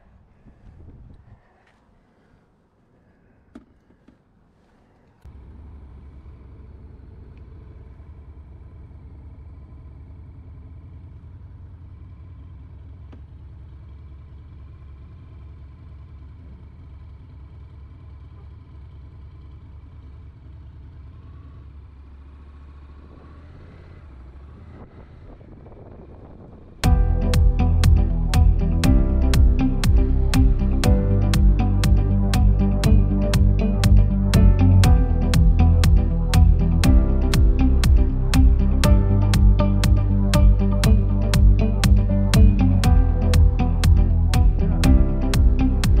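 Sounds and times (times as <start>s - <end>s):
motorcycle engine starting and idling: 5.3s - 46.0s.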